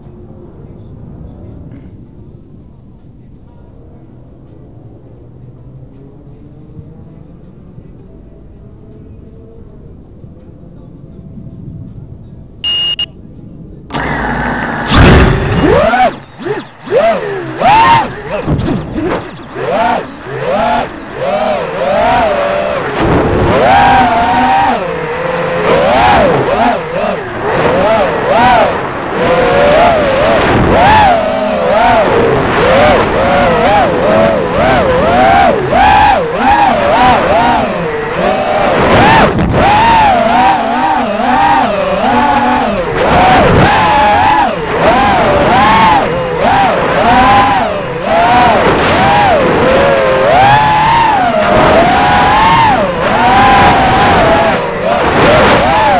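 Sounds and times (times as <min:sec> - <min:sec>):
drone motors whining: 0:12.6 - 0:13.1, 0:13.9 - 0:55.9
short beep: 0:12.6 - 0:13.2.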